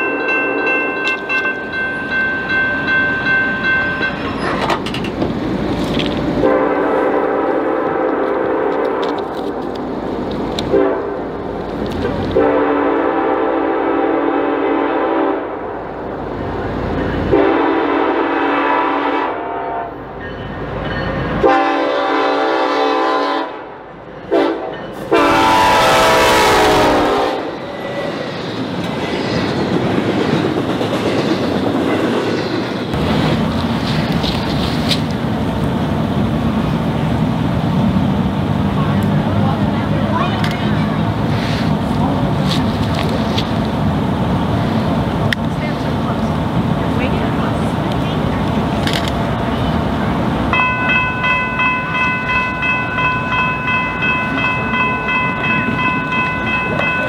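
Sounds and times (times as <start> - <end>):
train cars rolling past: 0.0 - 14.0, 14.6 - 19.0, 19.8 - 57.0
train air horn blasts: 6.4 - 9.2, 10.7 - 11.2, 12.4 - 15.7, 17.3 - 20.0, 21.4 - 27.6.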